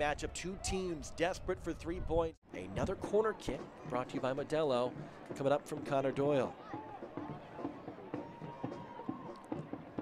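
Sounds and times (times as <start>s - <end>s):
distant crowd voices and shouts: 2.6s - 10.0s.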